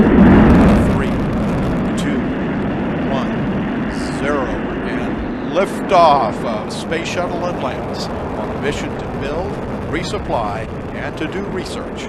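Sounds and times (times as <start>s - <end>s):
rocket engines roaring: 0.0s - 12.0s
sharp crack: 0.0s - 12.0s.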